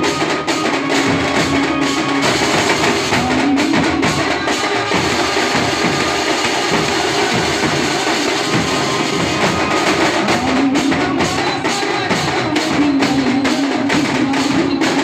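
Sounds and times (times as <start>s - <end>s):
driving drum beat: 0.0s - 15.0s
street band melody: 0.0s - 15.0s.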